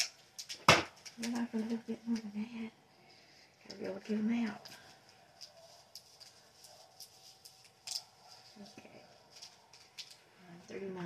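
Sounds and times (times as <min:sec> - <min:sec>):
light clicks of plastic beads: 0:03.6 - 0:10.4.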